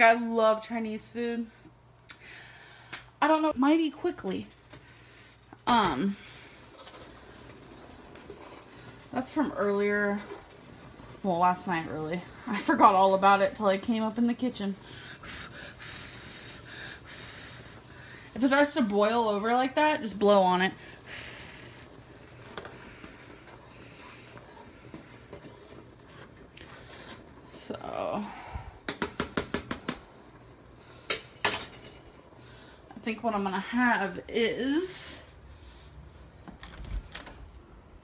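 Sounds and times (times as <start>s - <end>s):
rice boiling in saucepan: 3.7s - 36.1s.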